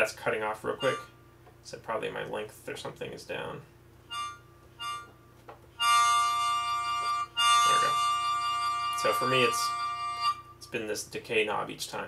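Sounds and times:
harmonica chord: 0:00.6 - 0:01.2, 0:04.1 - 0:10.8.

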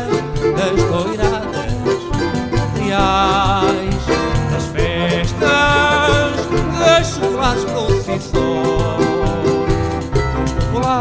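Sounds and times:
live folk band playing: 0:00.0 - 0:11.0.

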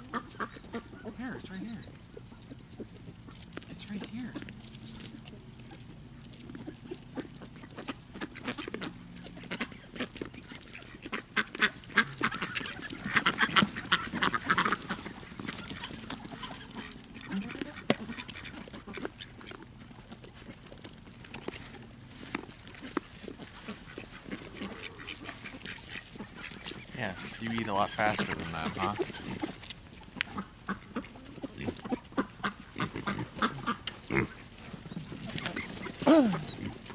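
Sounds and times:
animals chewing corn: 0:00.0 - 0:36.9
ducks quacking: 0:00.0 - 0:36.9.

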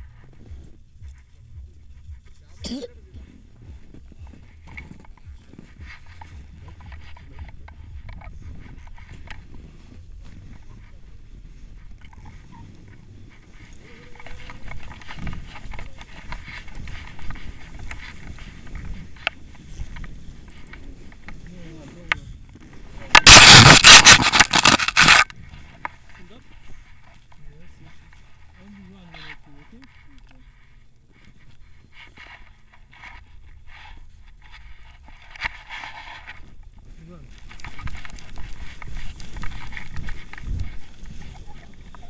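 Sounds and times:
wind rumble on microphone: 0:00.0 - 0:23.2, 0:36.4 - 0:42.0
boots and skis crunching snow: 0:00.0 - 0:42.0.

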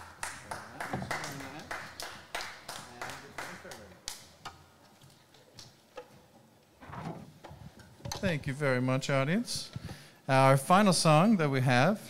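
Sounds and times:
single handclaps: 0:00.0 - 0:04.2.

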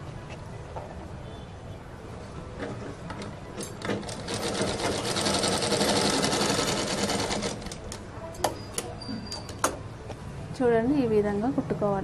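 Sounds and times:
sewing machine stitching: 0:03.2 - 0:07.9.

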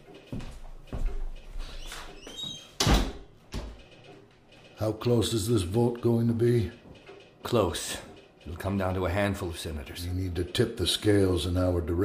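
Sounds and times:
door hinge squeak: 0:01.6 - 0:03.2
door shutting with thud: 0:02.4 - 0:03.8.

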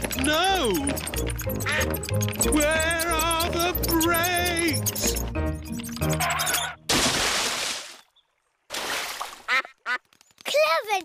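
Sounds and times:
cartoon duck quacking: 0:01.5 - 0:02.0.

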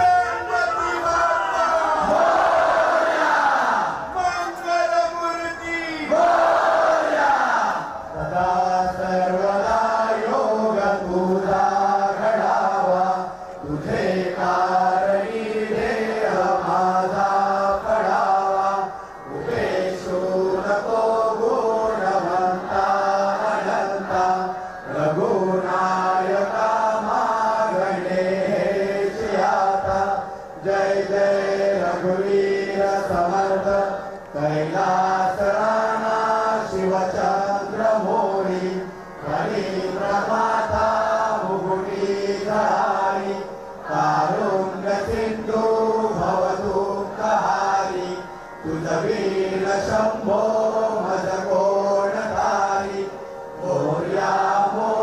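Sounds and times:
voices chanting: 0:00.0 - 0:04.7, 0:05.9 - 0:55.0.

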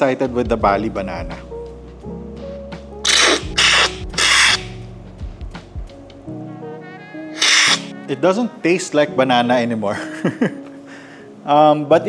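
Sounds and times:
background music: 0:00.0 - 0:12.0
hissing coffee slurps: 0:03.1 - 0:04.8, 0:07.4 - 0:07.9.

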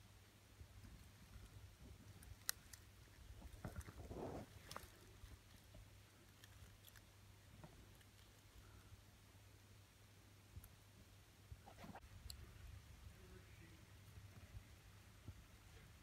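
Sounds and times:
low steady hum: 0:00.0 - 0:16.0
soft rustle: 0:00.4 - 0:09.2, 0:11.4 - 0:12.4.

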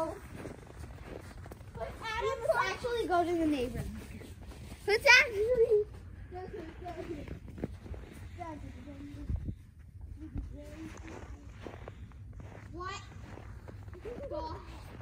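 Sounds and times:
faint children's voices: 0:00.0 - 0:15.0
footsteps in snow: 0:00.0 - 0:15.0.

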